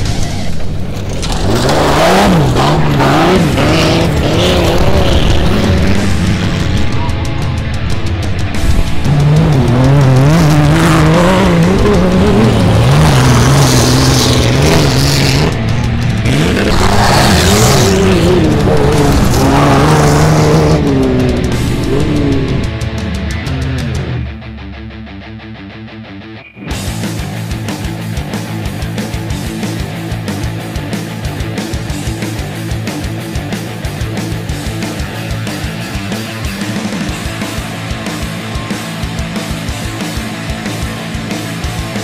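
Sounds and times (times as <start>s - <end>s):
buggy engines revving past: 0.0s - 7.2s, 8.6s - 24.2s
rock music: 0.0s - 42.0s.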